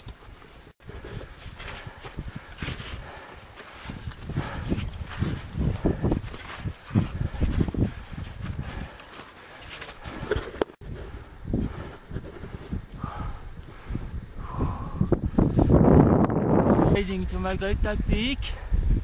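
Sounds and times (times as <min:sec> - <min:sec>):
boots crunching through snow: 0:01.2 - 0:10.5.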